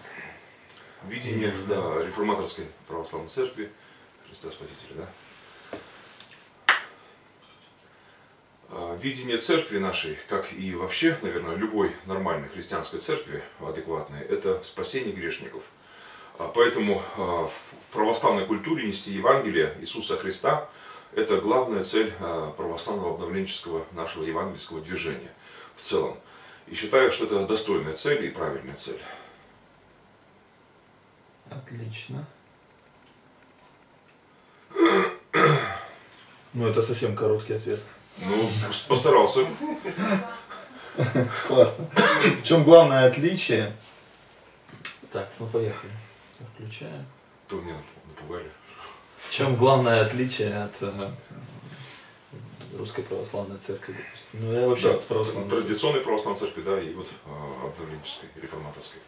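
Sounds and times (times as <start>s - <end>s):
man clearing his throat: 34.7s - 36.0s, 41.9s - 42.4s.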